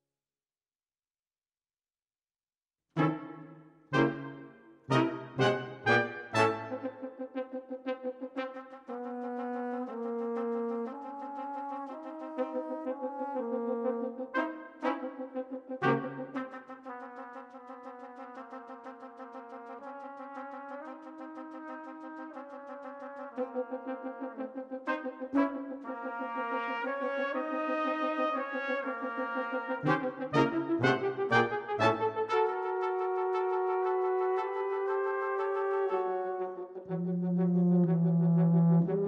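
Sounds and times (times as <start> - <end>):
low tuba notes: 3.0 - 17.2, 22.6 - 39.0
brass quintet playing: 3.0 - 39.0.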